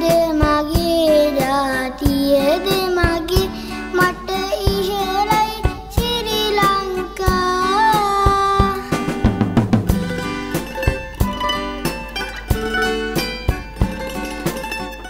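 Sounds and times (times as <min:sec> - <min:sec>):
boy singing: 0:00.0 - 0:09.1
instrumental backing melody: 0:00.0 - 0:15.0
drum hits: 0:00.4 - 0:15.0.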